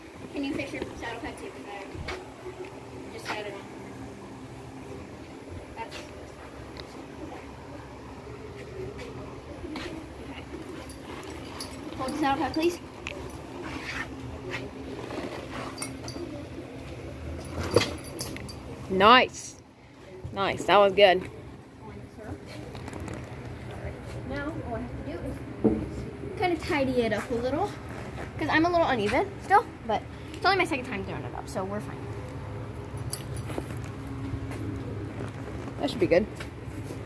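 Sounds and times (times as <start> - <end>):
low steady hum: 0.0 - 37.0
metallic clinks of horse tack: 10.6 - 13.5, 15.0 - 16.4, 17.3 - 18.8, 32.9 - 34.0.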